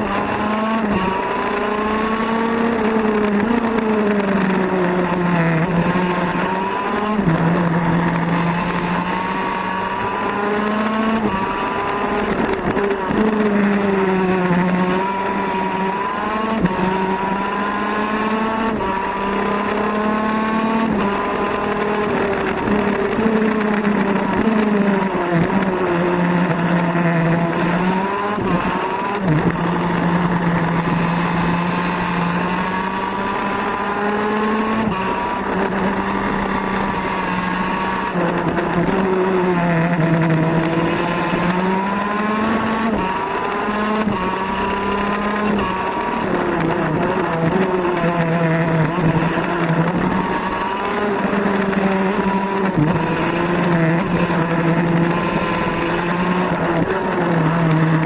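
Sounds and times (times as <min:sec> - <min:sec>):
kart engine buzzing: 0:00.0 - 0:58.0.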